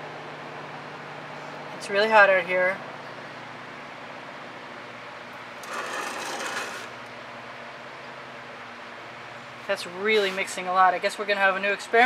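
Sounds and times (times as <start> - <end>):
canvas scraping on surface: 5.6 - 6.9.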